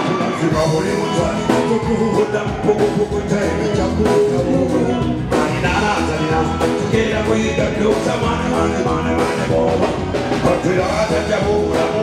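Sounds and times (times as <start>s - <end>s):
live band with keyboard and drums: 0.0s - 12.0s
man singing into microphone: 0.0s - 12.0s.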